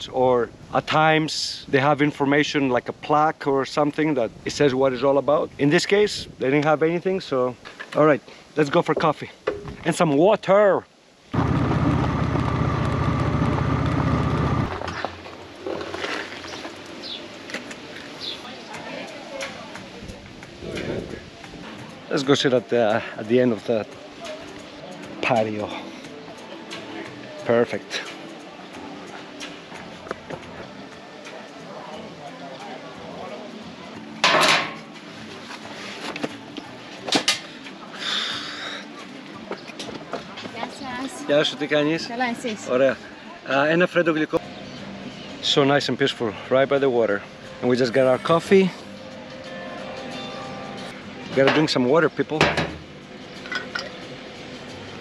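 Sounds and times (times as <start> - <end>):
motorcycle engine on gravel road: 11.4 - 17.2
faint voices: 17.3 - 52.1.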